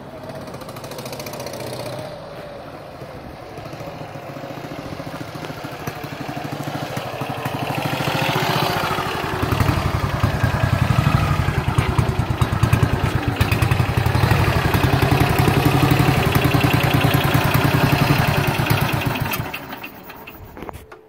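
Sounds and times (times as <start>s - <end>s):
motorcycle engine idling: 0.0s - 21.0s.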